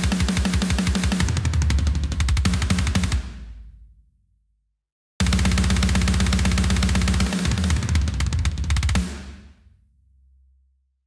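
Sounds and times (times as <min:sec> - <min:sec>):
programmed metal drums: 0:00.0 - 0:03.3, 0:05.2 - 0:09.2.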